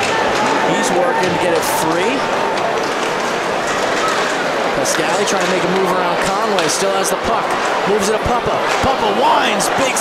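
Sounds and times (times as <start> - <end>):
voices in arena: 0.0 - 10.0.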